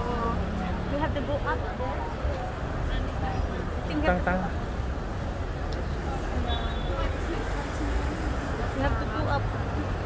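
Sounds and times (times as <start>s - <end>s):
passers-by voices: 0.0s - 10.0s
road traffic rumble: 0.0s - 10.0s.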